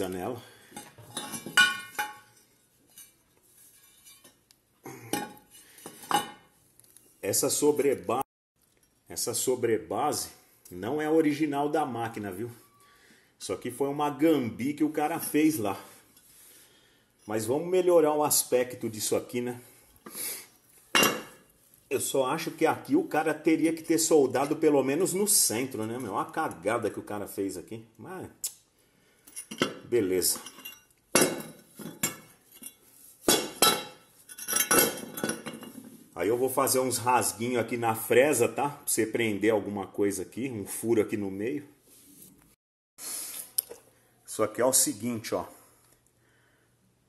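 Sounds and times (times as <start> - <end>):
metal scrape: 0.8 - 4.4.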